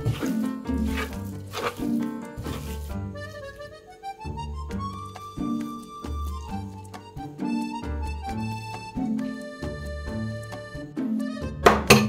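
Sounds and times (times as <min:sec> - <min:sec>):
hand squishing raw chicken: 0:00.0 - 0:03.6
instrumental background music: 0:00.0 - 0:12.0.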